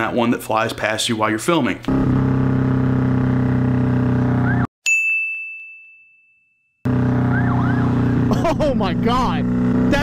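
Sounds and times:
motorcycle engine running: 0:01.9 - 0:04.7, 0:06.9 - 0:10.0
police siren whoops: 0:04.4 - 0:04.7, 0:07.2 - 0:08.3
bell-like ding: 0:04.8 - 0:06.8.

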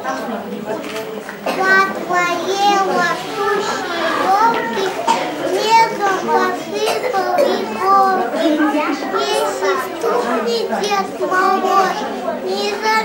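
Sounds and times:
young children chattering: 0:00.0 - 0:13.0.

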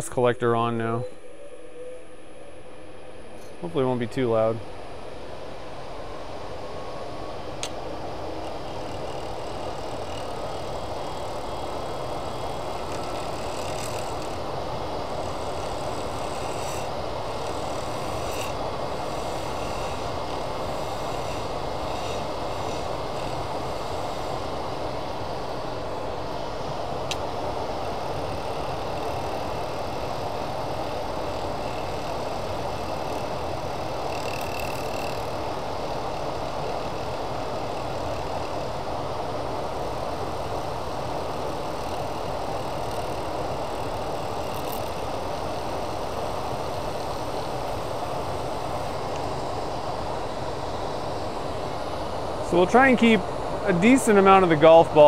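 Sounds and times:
dust collector running: 0:00.0 - 0:55.0
wood lathe spinning: 0:06.4 - 0:55.0
turning tool cutting: 0:07.6 - 0:25.6, 0:26.5 - 0:49.7.

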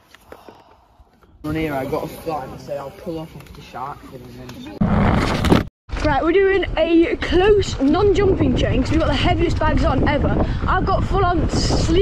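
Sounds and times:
wind rush: 0:07.3 - 0:12.0.

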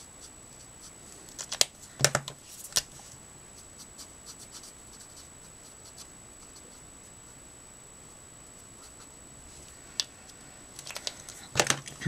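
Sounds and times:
marker nib scratching on card: 0:03.6 - 0:06.8.

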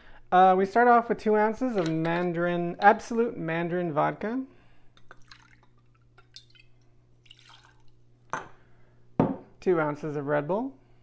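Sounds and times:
liquid pouring and dripping: 0:05.0 - 0:08.1.

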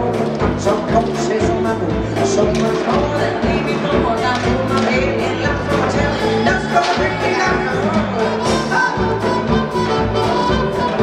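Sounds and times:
upbeat circus band music: 0:00.0 - 0:11.0.

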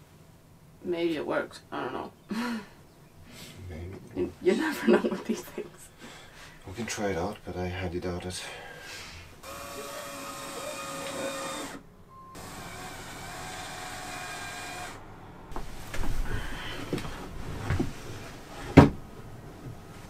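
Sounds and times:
cordless drill driving screws: 0:09.4 - 0:11.8, 0:12.4 - 0:15.0
knocks and handling noise: 0:15.5 - 0:20.0.

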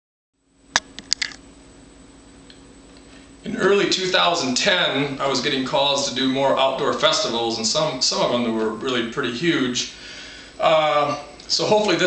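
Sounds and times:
low steady hum: 0:00.4 - 0:12.0.

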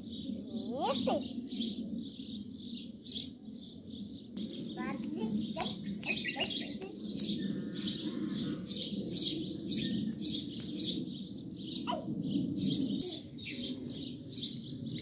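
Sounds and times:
small bird chirping: 0:00.0 - 0:15.0
steady low hum: 0:01.3 - 0:15.0.

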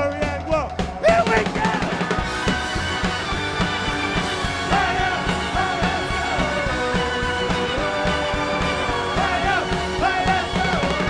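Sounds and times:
drum kit beat: 0:00.0 - 0:11.0
electric guitars and bass: 0:00.0 - 0:11.0
person singing: 0:04.6 - 0:11.0.

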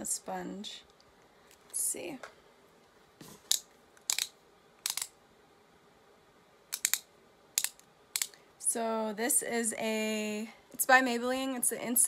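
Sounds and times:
sharp plastic clicks: 0:03.5 - 0:05.1, 0:06.7 - 0:08.4.

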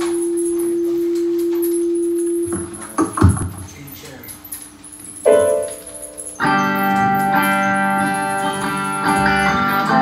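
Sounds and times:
steady electronic tone: 0:05.3 - 0:06.4.

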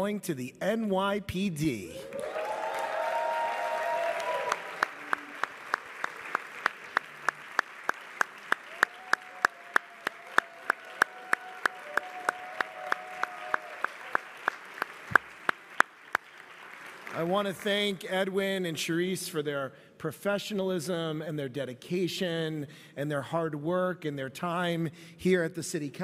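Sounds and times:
crowd applause: 0:02.0 - 0:17.9.

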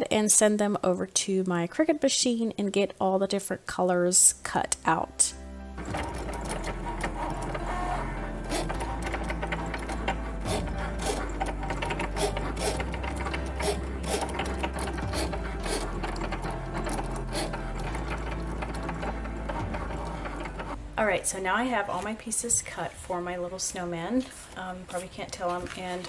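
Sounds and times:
cutting machine motors whirring: 0:05.8 - 0:20.8.

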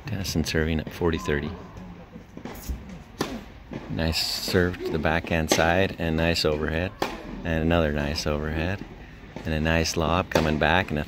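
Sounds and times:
tennis ball struck with racket: 0:02.4 - 0:07.4.

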